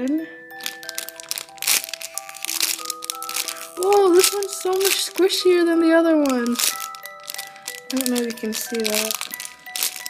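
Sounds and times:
soft background music: 0.0s - 10.0s
plastic bag crinkling: 0.3s - 10.0s.

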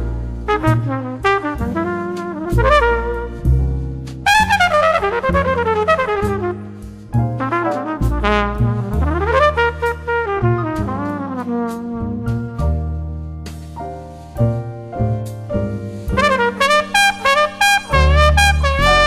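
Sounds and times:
drums: 0.0s - 17.0s
bass: 0.0s - 19.0s
trumpet playing: 0.5s - 3.5s, 4.2s - 12.5s, 16.1s - 19.0s.

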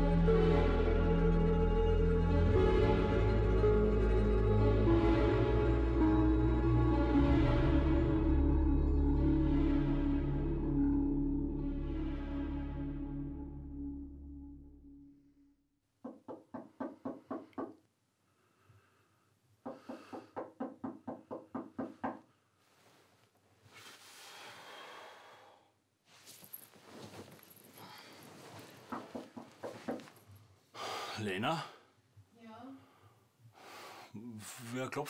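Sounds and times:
knocking on a door: 16.0s - 17.8s, 19.6s - 22.2s.

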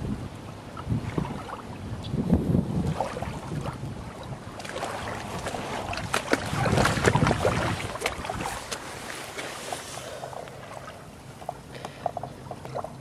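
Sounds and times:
wind rumbling on microphone: 0.0s - 13.0s
small waves lapping: 0.2s - 13.0s.

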